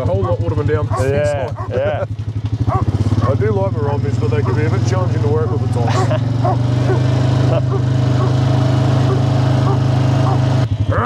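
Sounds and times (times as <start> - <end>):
quad bike engine revving: 0.0 - 11.0
man shouting: 0.1 - 2.0.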